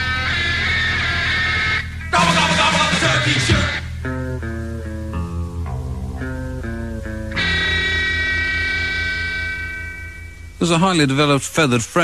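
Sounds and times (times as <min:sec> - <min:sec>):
electric guitar notes: 0:00.0 - 0:10.7
bass: 0:00.0 - 0:12.0.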